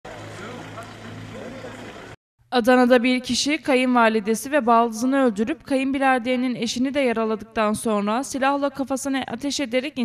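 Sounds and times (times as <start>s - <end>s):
faint crowd voices: 0.1s - 2.2s.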